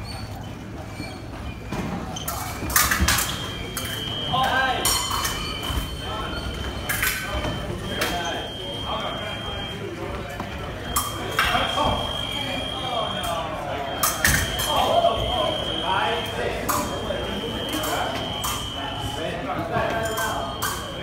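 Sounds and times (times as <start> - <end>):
scoring machine high tone: 3.1 - 6.7, 7.3 - 21.0.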